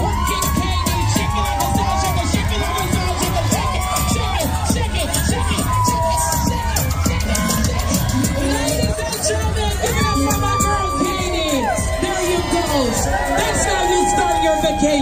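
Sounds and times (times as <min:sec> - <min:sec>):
crowd cheering and shouting: 0:00.0 - 0:15.0
dance music over loudspeakers: 0:00.0 - 0:15.0.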